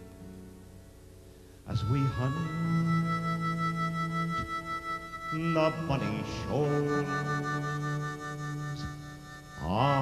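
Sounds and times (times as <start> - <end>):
acoustic guitar: 0.0 - 10.0
harmonica: 1.5 - 10.0
man singing a folk ballad: 1.6 - 10.0.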